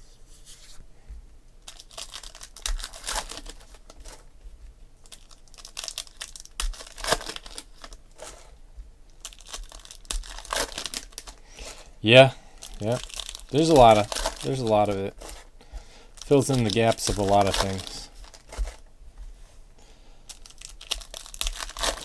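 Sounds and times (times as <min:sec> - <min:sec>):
foil wrappers crinkling and tearing: 0:01.6 - 0:04.3, 0:05.0 - 0:08.5, 0:09.2 - 0:11.9, 0:12.6 - 0:18.9, 0:20.3 - 0:22.0.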